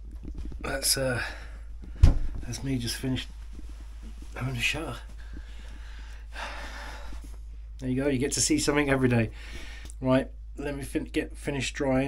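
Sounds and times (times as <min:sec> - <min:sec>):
low steady hum: 0:00.0 - 0:12.0
man breathing: 0:01.1 - 0:02.5, 0:05.1 - 0:07.8, 0:09.3 - 0:10.0
towel rubbing over skin: 0:02.5 - 0:05.6.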